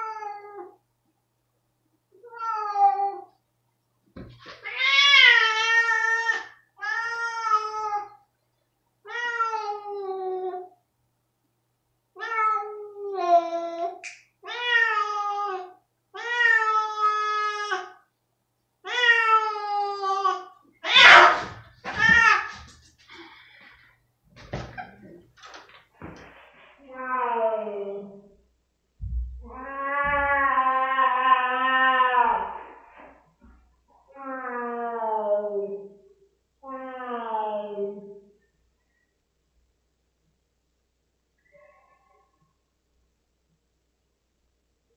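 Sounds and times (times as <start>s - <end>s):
cat yowling: 20.8s - 22.6s
low thumps: 29.0s - 30.3s.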